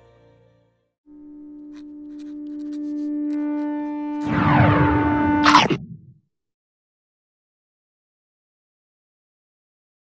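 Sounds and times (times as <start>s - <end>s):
held synth tone: 1.1s - 6.2s
noisy sweep with falling pitches: 3.3s - 6.2s.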